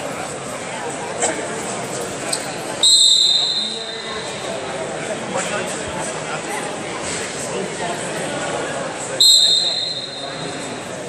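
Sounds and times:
referee's whistle blast: 2.8 - 4.4, 9.2 - 10.7.

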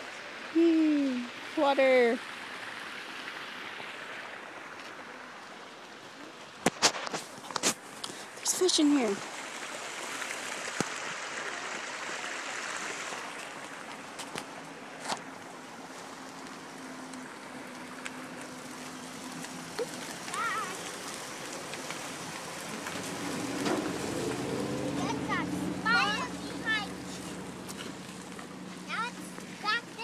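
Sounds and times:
creek water running over rocks: 0.0 - 30.0
voices: 0.6 - 2.2, 8.4 - 9.2, 18.4 - 30.0.

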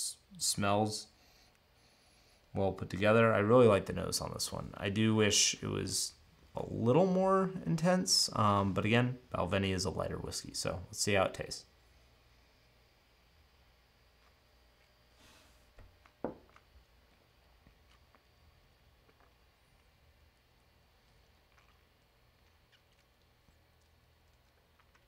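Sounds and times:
soft breath: 1.1 - 2.5, 15.1 - 15.7.

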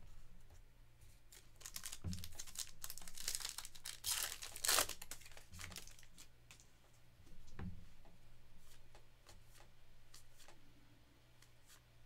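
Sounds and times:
foil pack tearing and crinkling: 1.4 - 6.2.

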